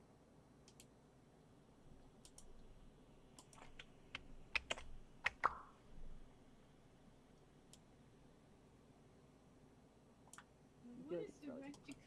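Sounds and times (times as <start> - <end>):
computer keyboard typing: 3.4 - 5.5.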